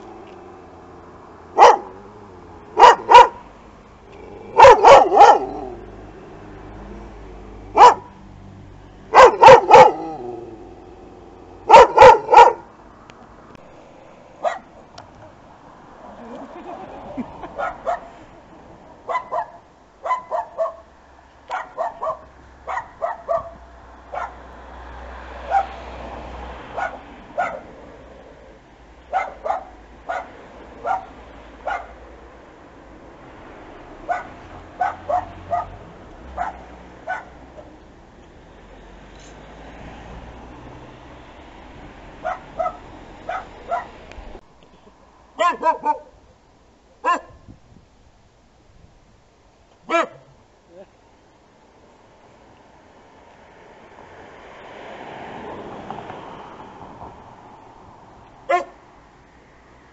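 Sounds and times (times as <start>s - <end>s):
dog barking: 1.6s - 2.0s, 2.8s - 3.4s, 4.6s - 5.6s, 7.8s - 8.1s, 9.1s - 10.2s, 11.7s - 12.7s, 14.4s - 14.7s, 17.6s - 18.1s, 19.1s - 20.9s, 21.5s - 24.4s, 25.5s - 25.8s, 26.7s - 27.8s, 29.1s - 32.0s, 34.1s - 35.8s, 36.4s - 37.4s, 42.2s - 44.0s, 45.4s - 46.2s, 47.0s - 47.4s, 49.9s - 50.3s, 58.5s - 58.8s
small dog barking: 1.6s - 2.0s, 2.8s - 3.4s, 4.5s - 5.7s, 7.8s - 8.1s, 9.1s - 10.2s, 11.7s - 12.7s, 14.4s - 14.7s, 17.6s - 18.1s, 19.1s - 20.9s, 21.5s - 24.4s, 25.5s - 25.7s, 26.8s - 27.7s, 29.1s - 32.0s, 34.1s - 35.8s, 36.4s - 37.4s, 42.2s - 44.0s, 45.4s - 46.2s, 47.0s - 47.4s, 49.9s - 50.3s, 58.5s - 58.8s.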